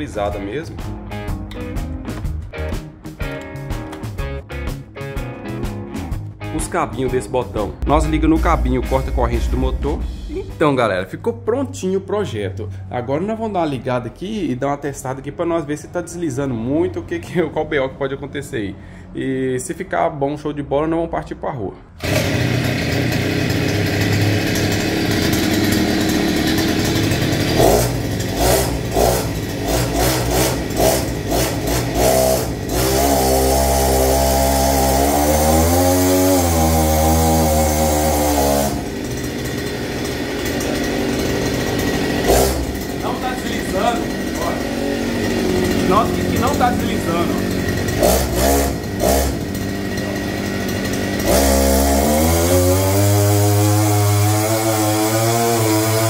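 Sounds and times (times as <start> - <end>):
two-stroke engine revving: 22.0 - 56.0.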